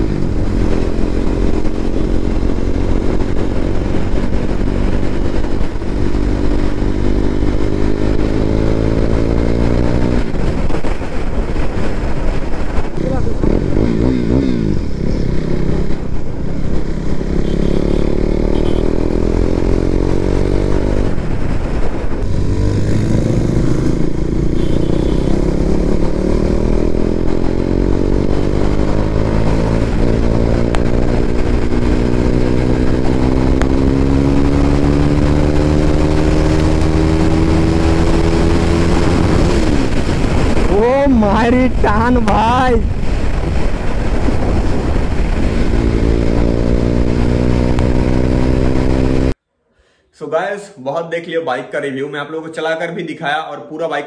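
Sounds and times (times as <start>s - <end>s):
motorcycle engine accelerating: 0.0s - 49.4s.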